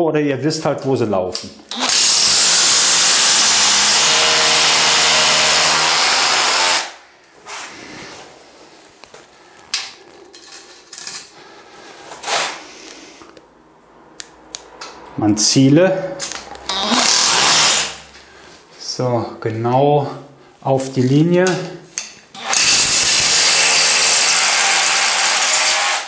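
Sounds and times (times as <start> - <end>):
cordless drill whine: 1.7 - 7.0, 22.4 - 26.0.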